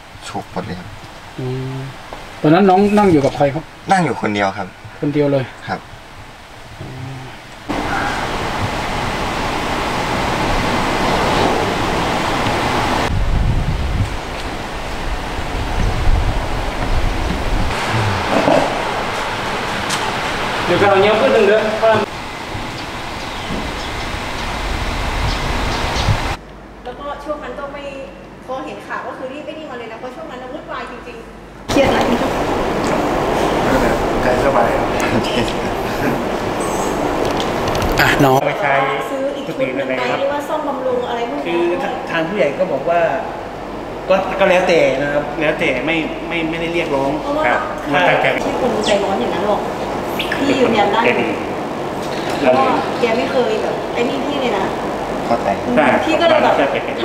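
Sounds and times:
steady rumbling noise: 0.0s - 38.4s
faint voices: 6.8s - 8.4s, 17.7s - 18.8s, 31.7s - 36.6s
wind on microphone: 6.8s - 20.6s, 22.0s - 26.4s, 31.7s - 38.4s.

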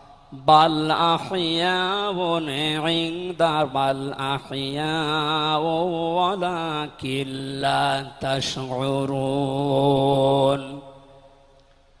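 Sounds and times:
man chanting melodically: 0.0s - 11.4s.

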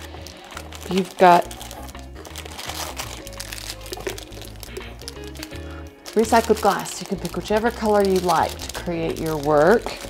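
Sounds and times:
plastic bag of glass crinkling: 0.0s - 10.0s.

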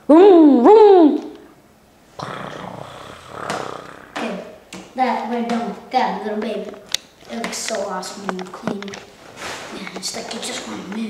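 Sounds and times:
boy imitating motorbike engine: 2.2s - 4.6s.

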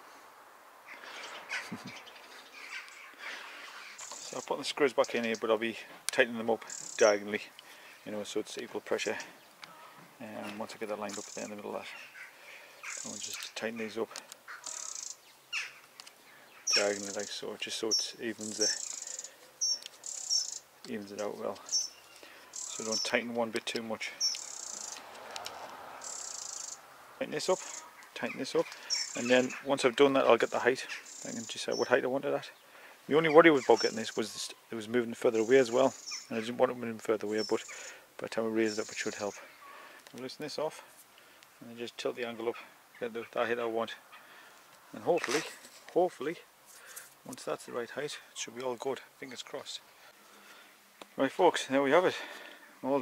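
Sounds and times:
crows cawing: 0.8s - 4.2s, 9.6s - 10.2s, 11.2s - 17.3s, 18.5s - 20.7s, 24.2s - 29.8s, 30.8s - 31.3s, 39.5s - 40.0s, 44.0s - 44.7s
small bird trilling: 3.8s - 4.5s, 6.7s - 7.2s, 11.2s - 13.5s, 14.5s - 15.8s, 16.6s - 17.3s, 17.9s - 20.7s, 21.6s - 23.2s, 24.2s - 25.0s, 26.0s - 26.8s, 27.6s - 29.7s, 31.0s - 31.9s, 35.4s - 36.3s
faint clicks: 23.6s - 25.8s.

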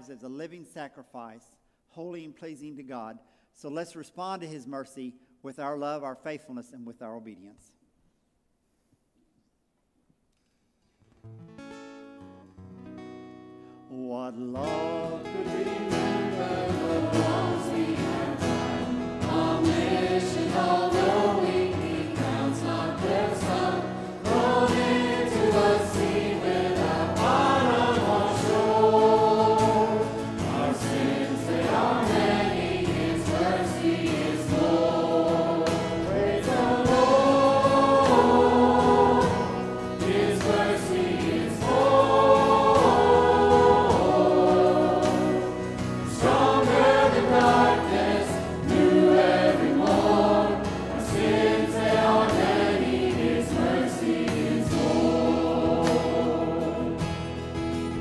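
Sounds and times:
choir singing gospel song: 14.6s - 58.0s
instrumental accompaniment: 15.3s - 58.0s.

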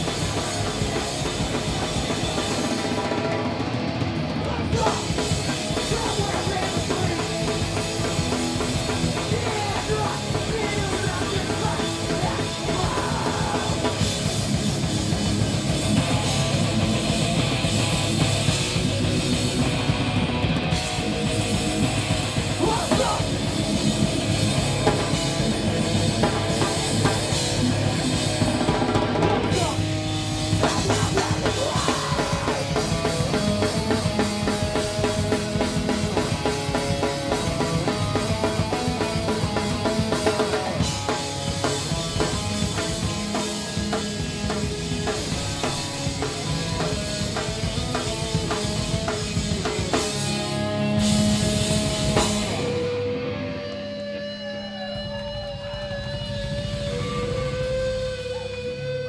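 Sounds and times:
heavy rock band playing: 0.0s - 59.0s
wavering held guitar tone: 50.2s - 59.0s.

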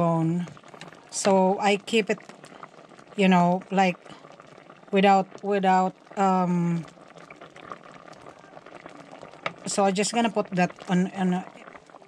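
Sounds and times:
pot bubbling with small pops: 0.0s - 12.0s.

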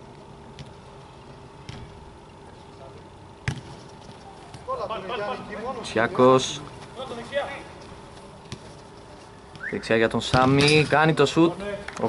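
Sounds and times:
faint steady hum: 0.0s - 12.0s
football kick: 3.4s - 3.8s.

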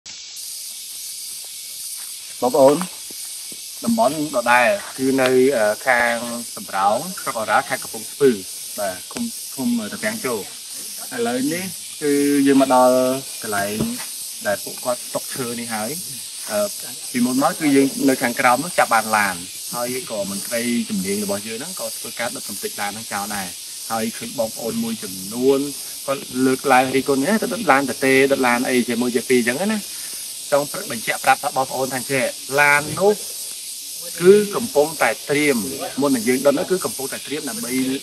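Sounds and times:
cicadas droning: 0.0s - 38.0s
high-pitched hiss: 0.1s - 38.0s
man talking: 2.4s - 2.9s, 3.8s - 33.2s, 34.0s - 38.0s.

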